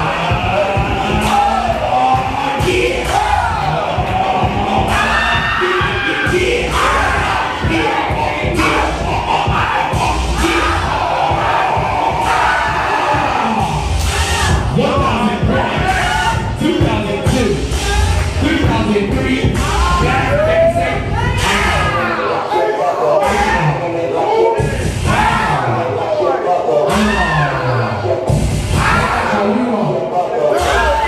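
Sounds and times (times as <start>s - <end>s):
crowd shouting and cheering: 0.0s - 31.0s
loud dance music with heavy bass: 0.0s - 31.0s.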